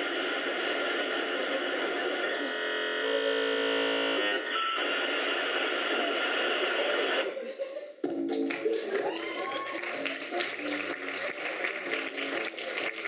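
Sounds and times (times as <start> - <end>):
audience applauding and cheering: 8.1 - 13.0.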